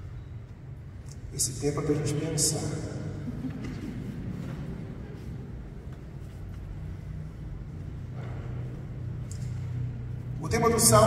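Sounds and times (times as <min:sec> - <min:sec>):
low rumbling hum: 0:00.0 - 0:11.0.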